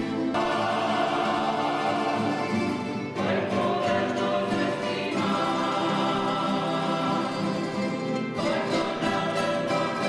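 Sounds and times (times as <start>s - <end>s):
guitars and mandolins playing: 0.0s - 10.0s
voices singing along: 0.0s - 10.0s.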